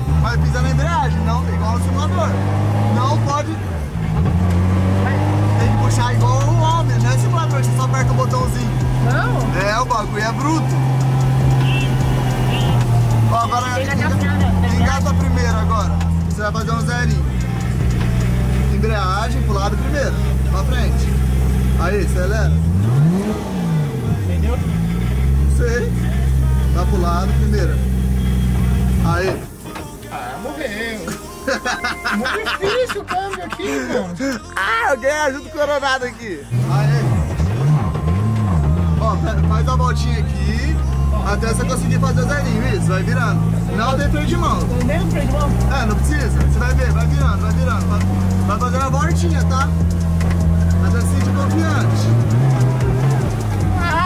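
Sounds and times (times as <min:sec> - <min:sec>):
car engine revving: 0:00.0 - 0:32.8, 0:35.6 - 0:54.0.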